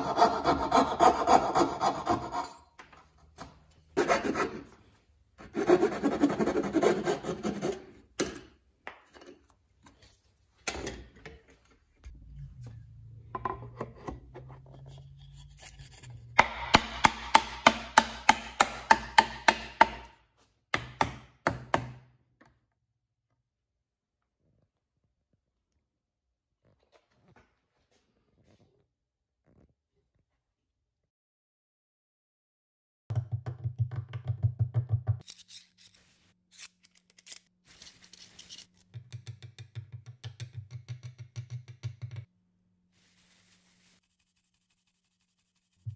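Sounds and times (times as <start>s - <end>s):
mallet knocking wood: 16.4s - 20.0s.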